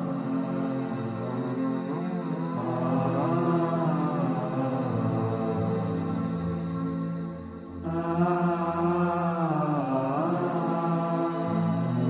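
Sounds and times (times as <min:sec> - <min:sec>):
layered voices chanting: 0:00.0 - 0:12.0.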